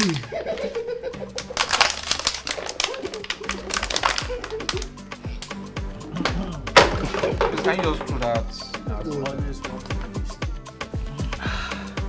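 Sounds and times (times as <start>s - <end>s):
plastic bottles crackling: 1.3s - 8.5s.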